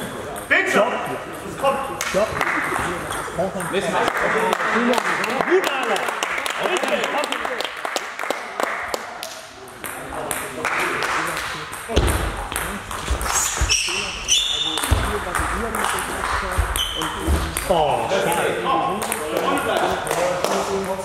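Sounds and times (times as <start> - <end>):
short high squeaks: 13.4 - 14.9
table tennis balls clicking: 14.6 - 21.0.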